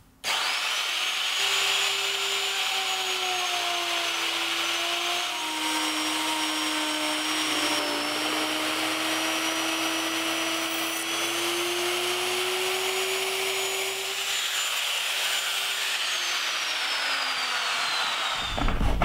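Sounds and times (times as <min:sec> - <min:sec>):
electric router cutting wood: 0:00.2 - 0:19.0.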